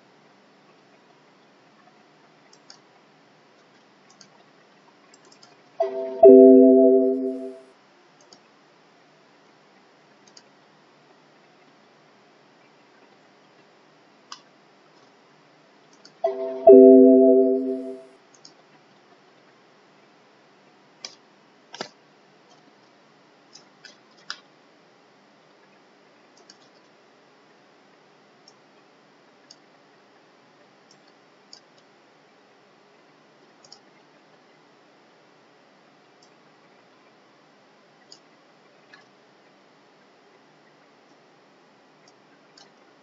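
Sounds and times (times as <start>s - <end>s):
faint room hiss: 0.0s - 43.0s
faint mouse clicks: 2.5s - 2.9s, 3.6s - 4.5s, 5.1s - 5.7s, 8.2s - 8.5s, 10.2s - 10.6s, 14.3s - 15.1s, 15.9s - 16.2s, 18.3s - 18.6s, 21.0s - 24.5s, 26.3s - 27.0s, 28.4s - 28.6s, 29.4s - 29.7s, 30.8s - 31.9s, 33.4s - 34.1s, 38.0s - 38.3s, 38.9s - 39.2s, 42.0s - 42.9s
computer alert chime: 5.8s - 7.6s, 16.2s - 18.0s.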